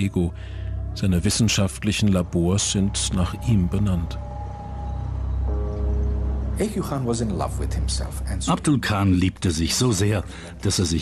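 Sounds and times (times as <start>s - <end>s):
held chord: 0.0s - 8.6s
low sustained drone: 0.0s - 8.6s.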